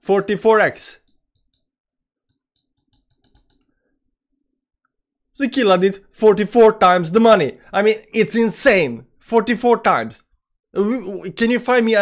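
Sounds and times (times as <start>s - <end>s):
computer mouse clicking: 1.0s - 1.7s, 2.3s - 3.7s.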